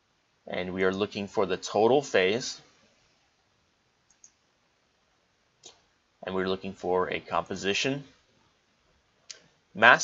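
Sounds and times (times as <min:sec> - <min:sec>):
faint computer mouse clicks: 0:04.0 - 0:04.4.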